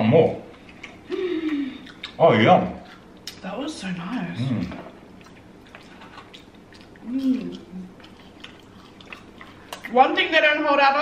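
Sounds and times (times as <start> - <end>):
chewing fried food: 0.5 - 10.3.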